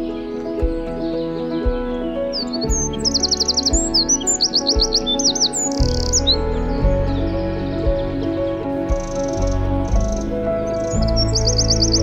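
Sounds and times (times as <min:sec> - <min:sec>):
soft music with low beat: 0:00.0 - 0:12.0
wren singing trills: 0:00.0 - 0:12.0.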